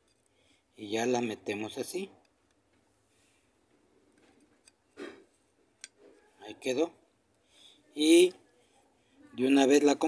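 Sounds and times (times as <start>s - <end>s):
faint handling of parts: 0.0s - 0.7s, 2.2s - 9.0s.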